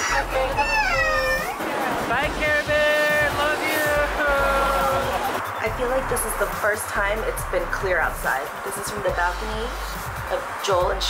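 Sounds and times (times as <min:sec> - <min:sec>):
young girl crying: 0:00.0 - 0:01.6.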